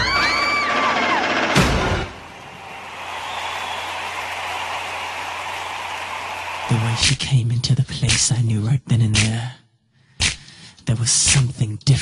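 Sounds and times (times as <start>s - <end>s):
audience applauding: 1.9s - 7.2s.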